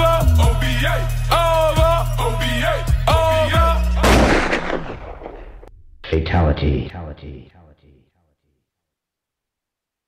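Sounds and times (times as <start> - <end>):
hip-hop beat with synth: 0.0 - 4.0
gunshot-like blast: 4.0 - 5.7.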